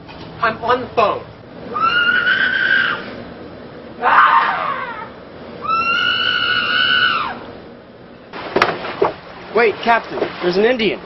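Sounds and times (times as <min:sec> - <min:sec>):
high-pitched screams: 0:01.7 - 0:03.1, 0:04.0 - 0:07.4.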